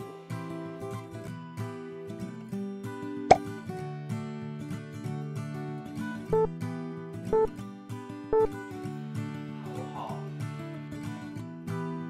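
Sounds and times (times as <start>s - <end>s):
acoustic guitar music: 0.1s - 9.6s.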